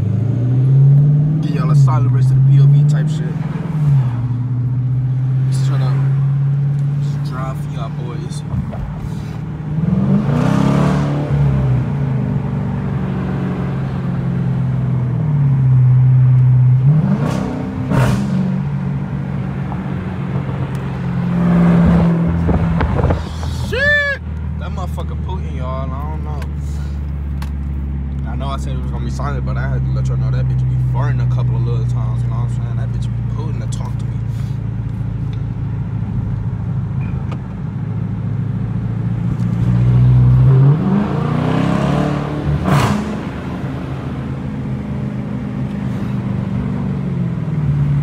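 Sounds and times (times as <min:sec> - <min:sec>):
car engine accelerating: 0:00.0 - 0:48.0
exhaust pops: 0:21.8 - 0:23.7.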